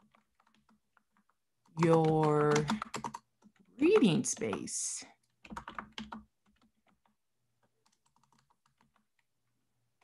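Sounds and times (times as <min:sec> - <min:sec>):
keyboard typing: 0:00.0 - 0:09.3.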